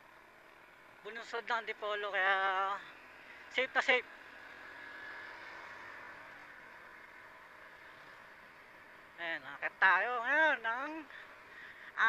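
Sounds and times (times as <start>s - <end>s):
motorcycle engine humming: 0.0s - 12.0s
wind and road noise: 0.0s - 12.0s.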